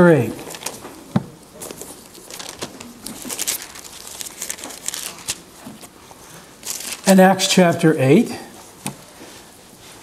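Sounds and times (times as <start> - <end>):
thin paper pages rustling: 0.4 - 0.9, 1.6 - 7.2.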